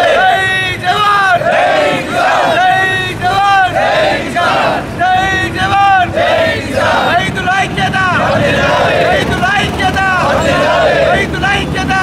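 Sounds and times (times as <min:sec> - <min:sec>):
crowd of men chanting: 0:00.0 - 0:12.0.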